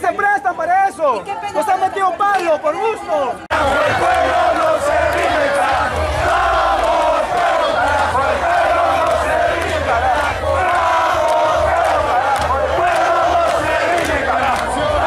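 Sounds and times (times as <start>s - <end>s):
crowd shouting and chanting: 0.0s - 15.0s.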